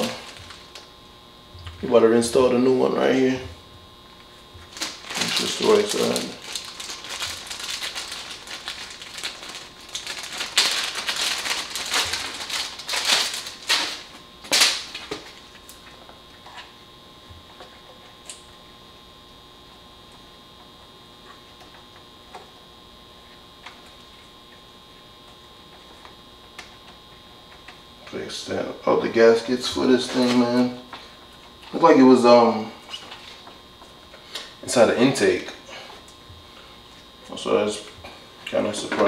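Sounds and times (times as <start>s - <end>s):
plastic bag crinkling: 0.0s - 0.9s, 4.6s - 15.7s
low steady hum: 0.0s - 39.0s.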